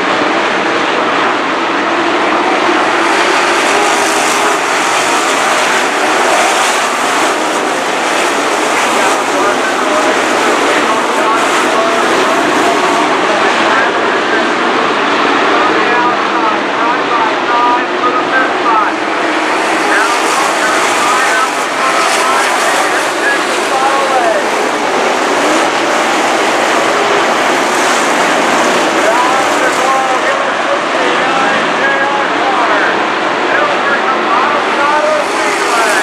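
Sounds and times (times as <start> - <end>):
race car engines roaring: 0.0 - 36.0.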